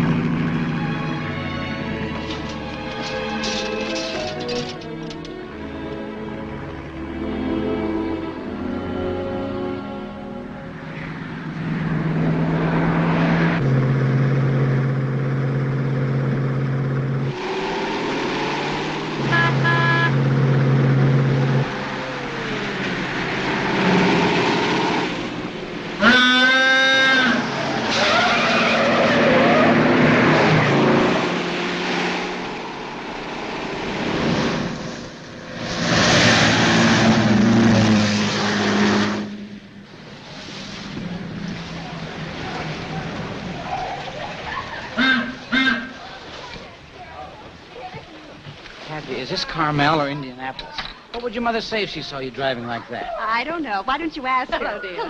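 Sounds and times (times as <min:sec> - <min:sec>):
car engine running hard: 0:00.0 - 0:05.3, 0:10.8 - 0:44.4
tyres squealing: 0:02.0 - 0:05.3, 0:26.0 - 0:31.1.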